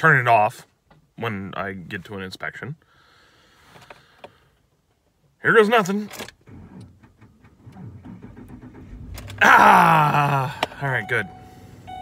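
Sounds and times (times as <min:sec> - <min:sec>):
car engine cranking and starting: 0:06.0 - 0:12.0.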